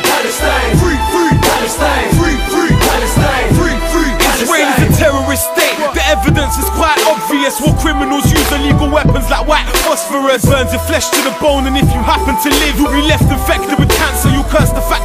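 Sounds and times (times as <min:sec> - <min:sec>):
rapping over a beat: 0:00.0 - 0:15.0.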